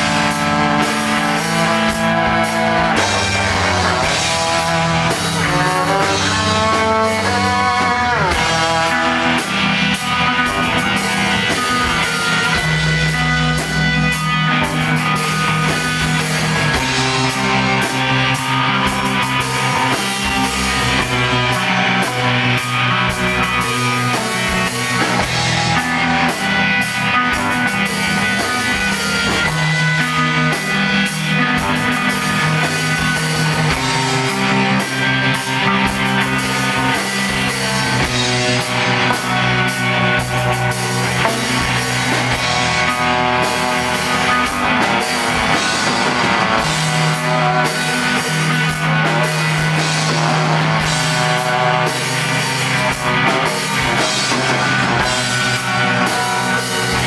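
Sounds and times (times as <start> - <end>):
bowed electric cello: 0.0 - 57.0
drum kit: 0.0 - 57.0
electric guitar: 0.0 - 57.0.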